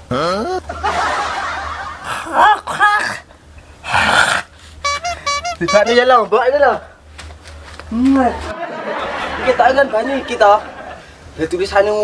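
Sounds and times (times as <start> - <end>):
man hissing and gasping: 3.8 - 4.8.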